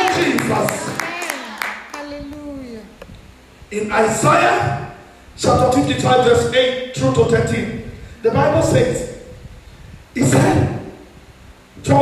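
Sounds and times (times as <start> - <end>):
man preaching through microphone: 0.0 - 0.9, 3.7 - 9.3, 10.2 - 11.0, 11.8 - 12.0.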